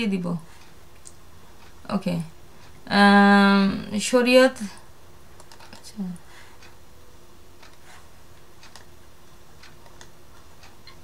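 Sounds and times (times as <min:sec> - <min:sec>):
computer keyboard and mouse clicks: 0:05.4 - 0:05.9, 0:08.6 - 0:08.9, 0:09.6 - 0:11.0.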